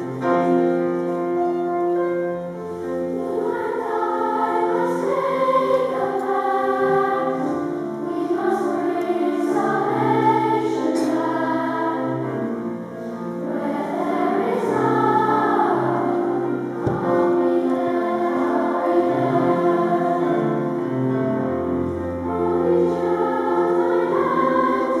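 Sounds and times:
boys' choir singing: 0:03.1 - 0:25.0.

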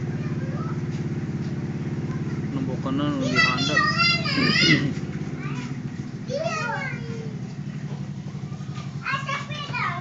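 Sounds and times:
children's voices: 0:00.0 - 0:01.1, 0:02.0 - 0:02.5, 0:03.1 - 0:10.0
low mechanical hum: 0:00.0 - 0:10.0.

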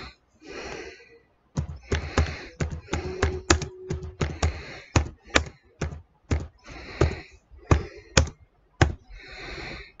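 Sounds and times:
keyboard keystrokes: 0:01.6 - 0:06.6.

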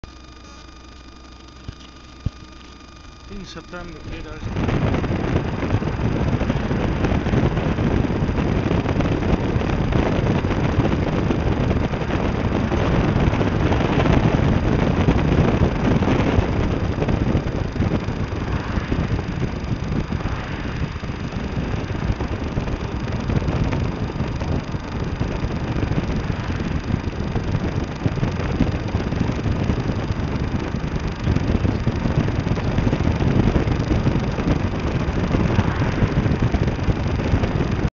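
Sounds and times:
vehicle engine and road noise: 0:00.0 - 0:37.9.

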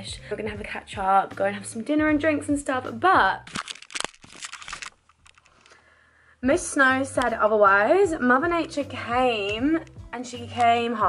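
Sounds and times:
small clicks: 0:03.5 - 0:05.8.

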